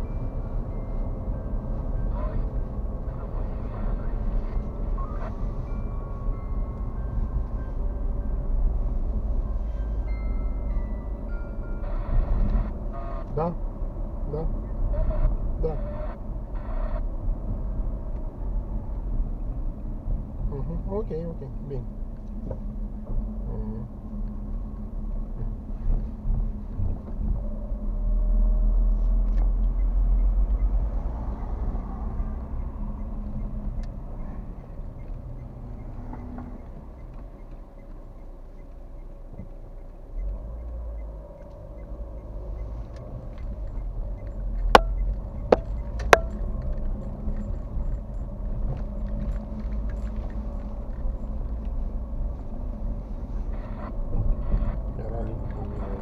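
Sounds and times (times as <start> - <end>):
car engine and tyres rumbling: 0.0 - 56.0.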